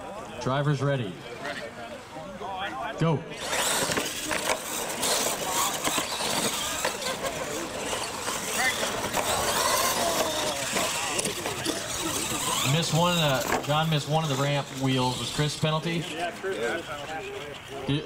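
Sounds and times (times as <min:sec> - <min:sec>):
onlookers chatting: 0:00.0 - 0:18.0
toy truck motors and tyres: 0:00.0 - 0:18.0.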